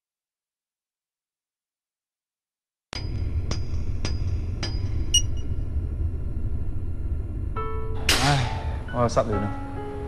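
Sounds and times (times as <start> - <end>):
low rumble: 3.1 - 8.0.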